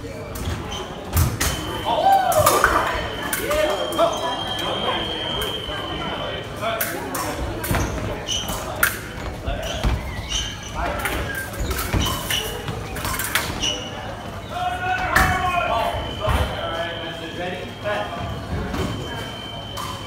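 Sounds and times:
voices: 0.0 - 20.0.

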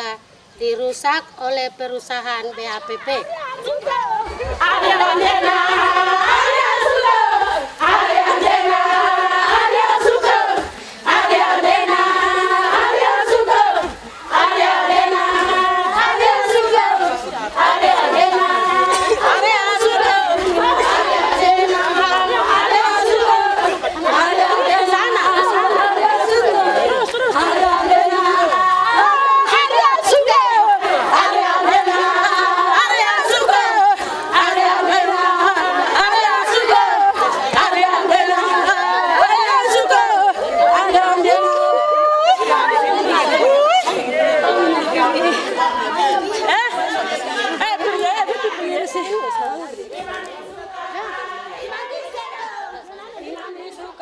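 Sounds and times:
women chanting and calling out: 0.0 - 54.0
lively group chatter: 9.8 - 54.0.

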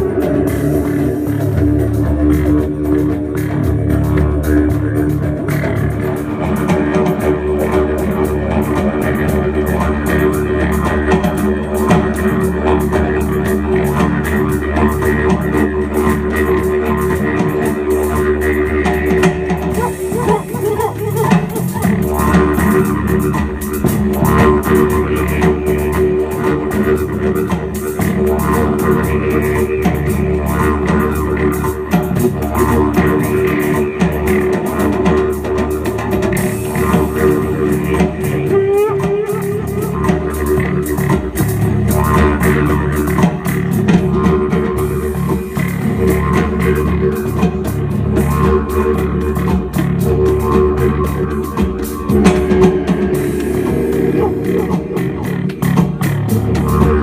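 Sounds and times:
drum kit: 0.0 - 57.0
electric bass guitar: 0.0 - 57.0.

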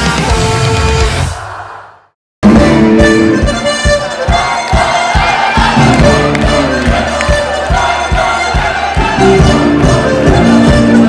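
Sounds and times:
live band music: 0.0 - 1.3, 2.4 - 11.0
crowd cheering and shouting: 0.0 - 11.0.

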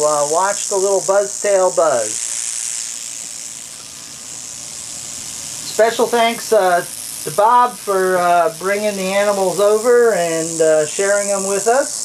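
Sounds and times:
man speaking: 0.0 - 2.2, 5.8 - 11.9
rattlesnake tail rattle: 0.0 - 12.0.

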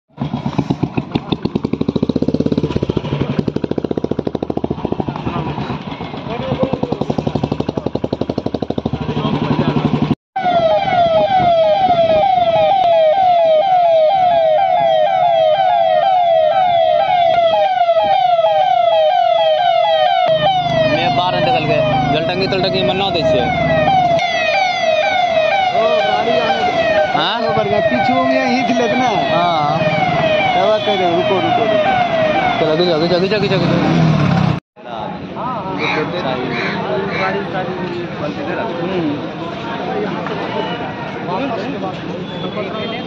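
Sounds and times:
motorcycle engine running: 0.2 - 10.1
electronic siren wailing: 10.4 - 33.5
voices: 20.6 - 23.7, 25.4 - 34.0, 34.8 - 43.0.

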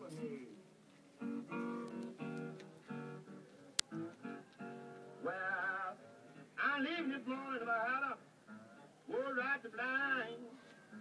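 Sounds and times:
acoustic guitar chords: 1.2 - 11.0
man singing: 5.2 - 8.2, 9.1 - 10.6.

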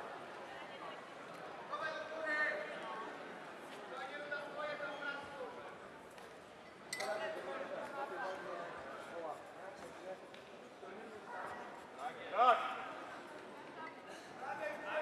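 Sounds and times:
voices calling out in a hall: 0.0 - 15.0.

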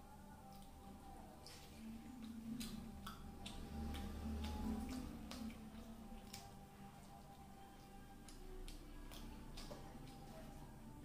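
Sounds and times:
chewing with mouth closed: 0.3 - 11.0
sharp mouth clicks: 1.4 - 6.6.

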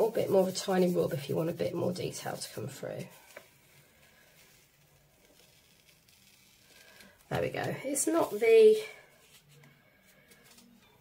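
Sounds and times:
paper rubbing on gel plate: 0.0 - 2.6, 4.4 - 9.5.

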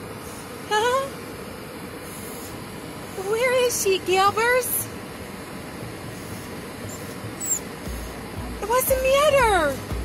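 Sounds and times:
car interior noise: 0.0 - 10.0.

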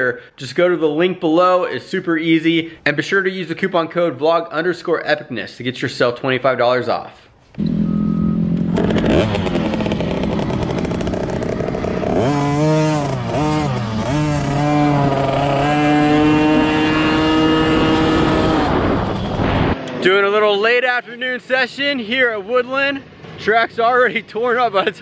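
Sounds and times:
motorcycle engine revving: 7.6 - 20.1.

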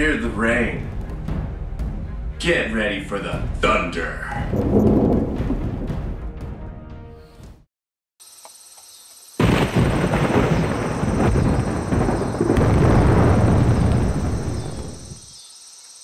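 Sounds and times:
thunder clap rumbling: 4.5 - 6.2, 9.4 - 15.3
crickets chirping: 8.2 - 16.0.

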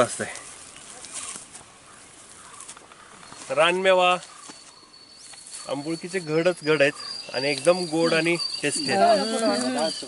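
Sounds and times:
high-pitched insect trill: 3.3 - 10.0.

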